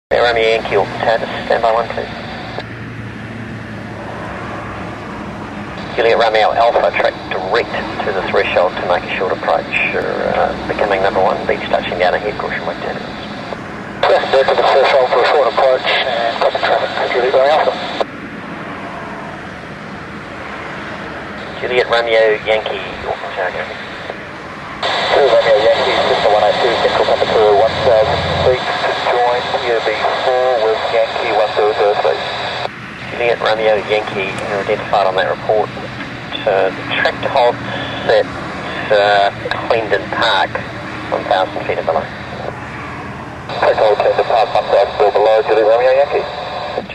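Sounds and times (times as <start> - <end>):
radio hiss: 0.1 - 2.6, 5.8 - 18.1, 21.4 - 24.2, 24.8 - 42.6, 43.5 - 46.9
radio voices: 0.1 - 2.6, 5.8 - 18.1, 21.4 - 42.6, 43.5 - 46.9
aircraft engine and propeller drone: 0.1 - 46.9
airflow noise: 0.1 - 46.9.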